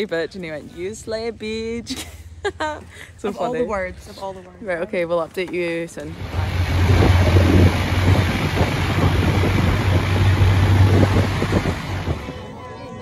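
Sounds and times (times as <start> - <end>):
vehicle engine running: 6.0 - 12.7
wind rumble on microphone: 6.1 - 13.0.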